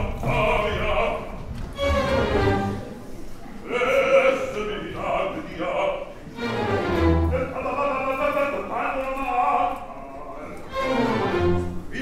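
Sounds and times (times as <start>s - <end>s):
orchestra: 0.0s - 12.0s.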